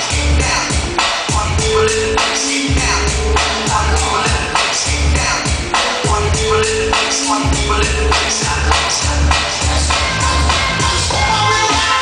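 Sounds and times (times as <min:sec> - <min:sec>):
dj music with deep bass beat: 0:00.0 - 0:12.0.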